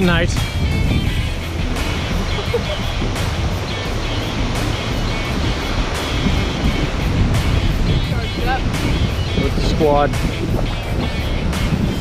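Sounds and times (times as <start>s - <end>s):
background music: 0.0s - 12.0s
surf: 0.0s - 12.0s
wind on microphone: 0.0s - 12.0s.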